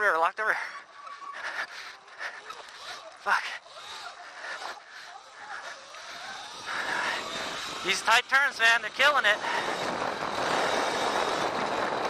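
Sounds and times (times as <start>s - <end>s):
tyres on dirt: 0.0s - 12.0s
wind noise while riding: 1.3s - 12.0s.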